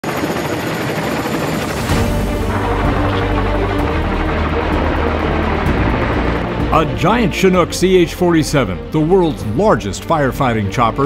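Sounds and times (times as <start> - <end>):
helicopter hovering: 0.0 - 11.0.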